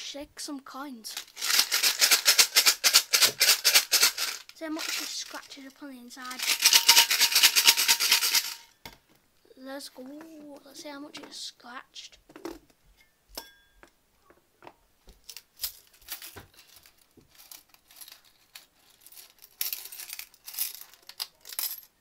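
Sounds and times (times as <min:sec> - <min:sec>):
coins rattling in metal mug: 0:01.2 - 0:05.5, 0:06.3 - 0:08.7, 0:15.6 - 0:21.9.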